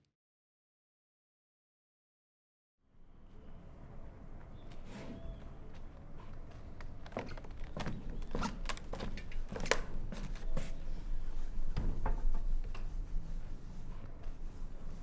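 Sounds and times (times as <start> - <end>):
footsteps on wooden floor: 6.2 - 10.8.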